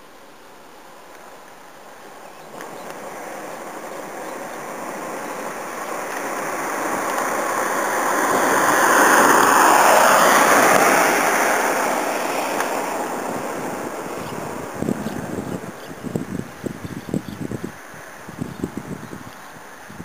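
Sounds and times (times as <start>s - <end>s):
vehicle passing by: 2.5s - 19.1s.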